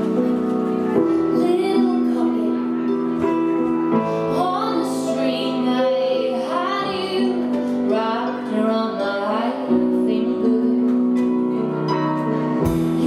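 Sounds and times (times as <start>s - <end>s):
woman singing: 0.0s - 3.4s, 4.0s - 13.0s
keyboard: 0.0s - 13.0s.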